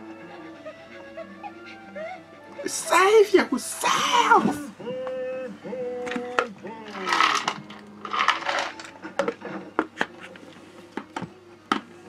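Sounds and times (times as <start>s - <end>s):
clinking rattle in cup: 6.9s - 8.9s.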